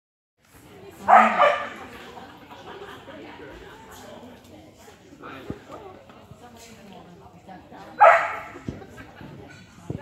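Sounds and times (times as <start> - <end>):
dog barking with echo: 1.1 - 1.8, 8.0 - 8.6.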